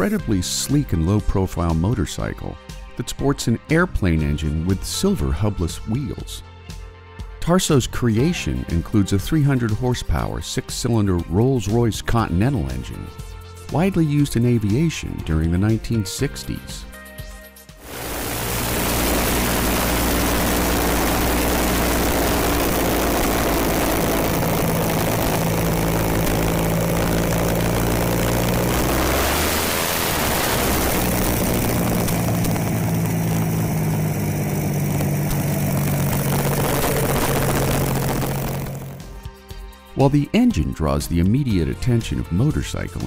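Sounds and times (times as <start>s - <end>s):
motorcycle engine revving: 17.8s - 39.2s.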